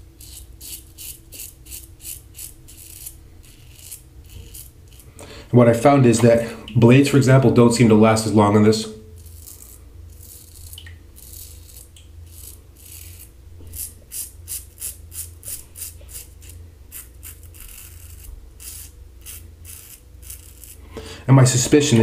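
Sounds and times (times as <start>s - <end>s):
razor scraping stubble: 0.0s - 5.2s, 9.1s - 20.9s.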